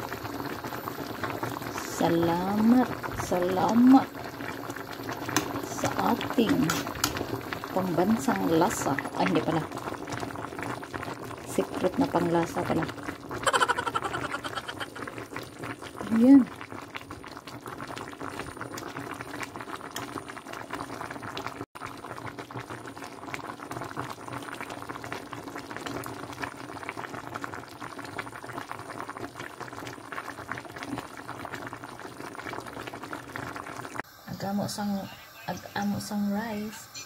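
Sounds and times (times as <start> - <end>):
broth boiling and bubbling: 0.0 - 37.0
voiced exclamation: 13.4 - 15.1.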